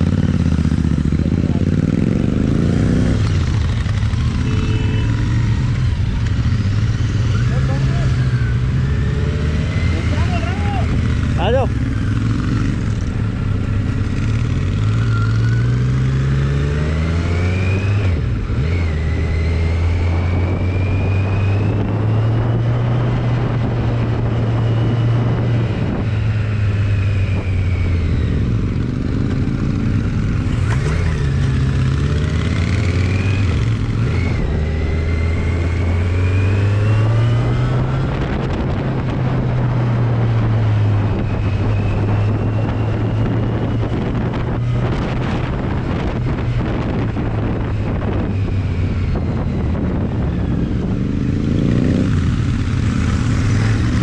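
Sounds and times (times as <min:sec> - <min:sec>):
motorcycle engine revving: 0:00.0 - 0:54.0
wind on microphone: 0:10.7 - 0:54.0.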